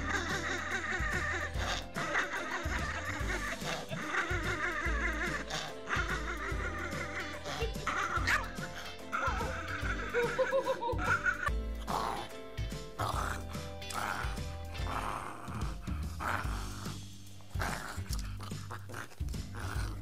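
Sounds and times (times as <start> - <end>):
upbeat background music: 0.0 - 20.0
small dog growling and yapping: 13.0 - 20.0.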